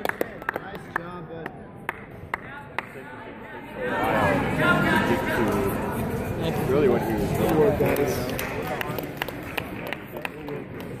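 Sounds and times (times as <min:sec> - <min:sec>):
hand claps: 0:00.0 - 0:03.0, 0:07.5 - 0:11.0
crowd voices: 0:00.7 - 0:11.0.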